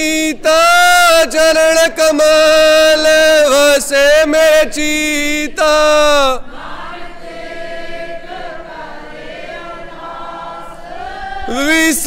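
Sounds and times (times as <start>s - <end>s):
group of voices singing: 4.2s - 12.0s.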